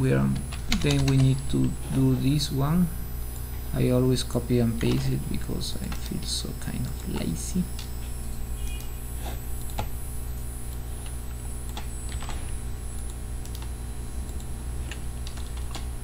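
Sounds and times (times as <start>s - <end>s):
low electrical hum: 0.0s - 16.0s
keyboard and mouse clicks: 0.3s - 1.7s, 4.8s - 5.1s, 14.3s - 15.9s.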